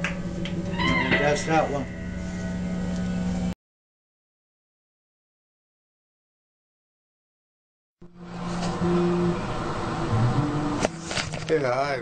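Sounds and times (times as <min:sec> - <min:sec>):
guitar amplifier hum and buzz: 0:00.0 - 0:03.5, 0:08.0 - 0:12.0.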